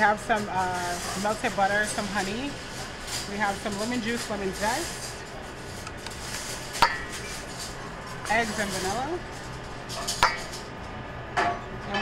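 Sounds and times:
utensil knocking steel bowl: 6.8s - 7.2s, 10.2s - 10.5s.

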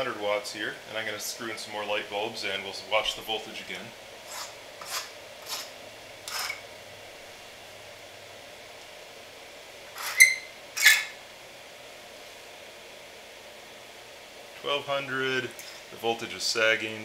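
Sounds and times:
light bulb scraping in socket: 6.3s - 6.6s, 10.0s - 11.2s.

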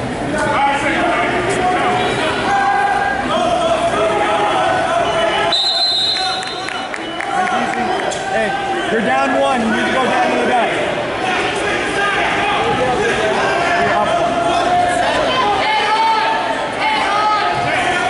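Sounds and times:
people shouting in gymnasium: 0.6s - 6.9s, 8.2s - 18.0s.

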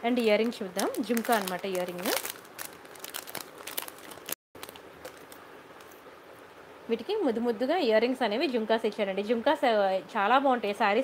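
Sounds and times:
faint crinkling: 0.1s - 6.1s.

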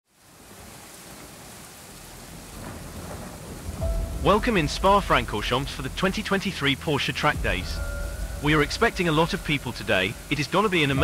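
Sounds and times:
steady rain falling: 0.0s - 11.0s
low rumble: 2.5s - 10.4s.

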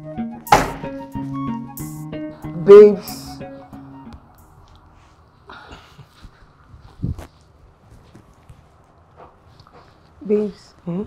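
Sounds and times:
faint soft footsteps: 4.2s - 11.0s
rustles: 4.5s - 11.0s.

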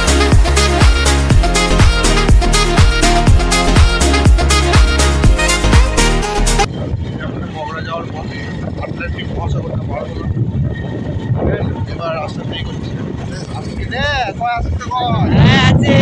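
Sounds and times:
wind buffeting microphone: 6.6s - 16.0s
voices of riders: 6.7s - 16.0s.

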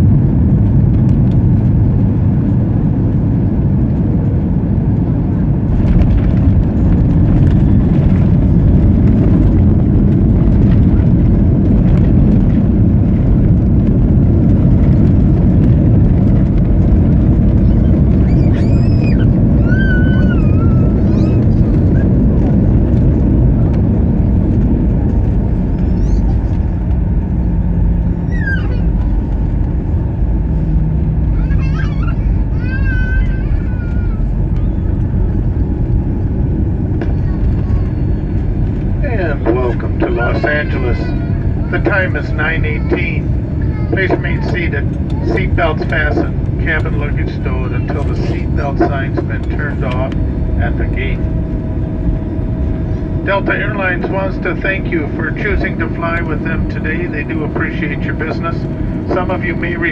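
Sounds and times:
wheels rolling on runway: 0.0s - 41.8s
jet engines rumbling: 0.0s - 59.9s
cabin announcement: 39.0s - 51.3s, 53.2s - 59.9s.

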